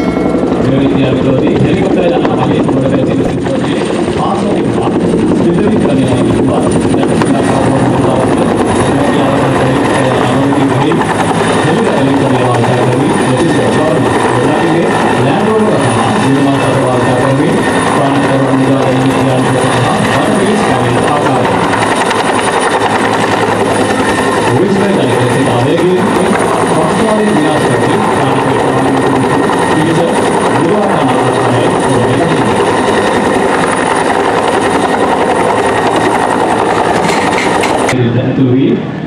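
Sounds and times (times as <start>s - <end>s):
helicopter hovering overhead: 0.0s - 39.0s.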